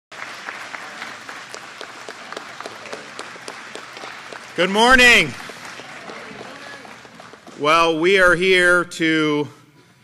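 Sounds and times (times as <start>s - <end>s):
audience applauding: 0.1s - 8.4s.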